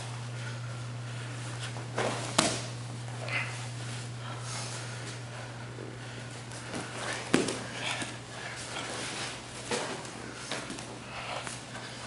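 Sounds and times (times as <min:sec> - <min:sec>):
low steady hum: 0:00.0 - 0:12.0
bodies scuffling on mats: 0:01.4 - 0:12.0.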